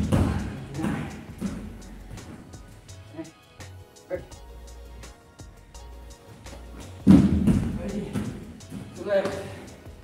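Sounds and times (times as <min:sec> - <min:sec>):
body landing on foam mat: 0:06.8 - 0:09.0.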